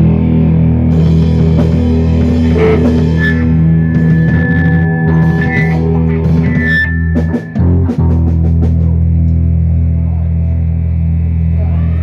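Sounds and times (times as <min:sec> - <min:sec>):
drums: 0:00.0 - 0:12.0
electric guitars: 0:00.0 - 0:12.0
long high note held: 0:02.4 - 0:05.8.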